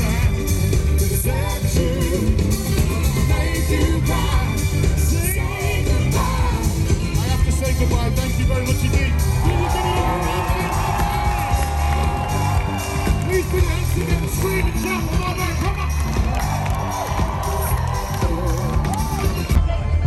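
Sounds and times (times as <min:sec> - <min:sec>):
man singing: 0:00.0 - 0:11.8, 0:17.4 - 0:20.0
heavy bass beat: 0:00.0 - 0:20.0
live pop band: 0:00.0 - 0:20.0
crowd cheering: 0:08.6 - 0:19.7.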